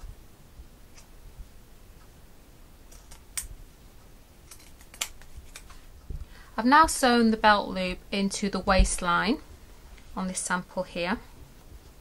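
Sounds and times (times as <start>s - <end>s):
fabric scissors snipping: 4.5s - 5.7s.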